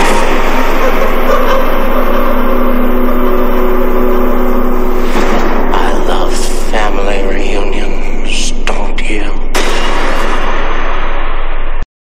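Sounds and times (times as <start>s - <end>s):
low sustained drone: 0.0s - 11.8s.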